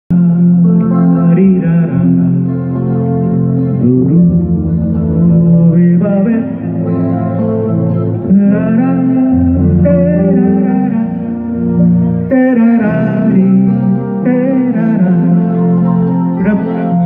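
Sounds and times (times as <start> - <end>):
man singing: 0.1 - 7.5, 8.2 - 17.0
electric guitar: 0.1 - 17.0
keyboard: 0.1 - 17.0.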